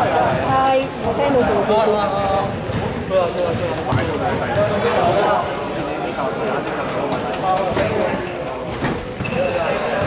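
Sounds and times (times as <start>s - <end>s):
ball bouncing on hardwood court: 2.4s - 4.9s.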